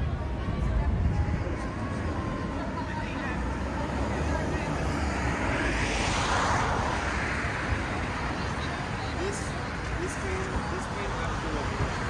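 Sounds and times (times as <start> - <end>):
low street rumble: 0.0 - 12.0
vehicle passing: 1.2 - 12.0.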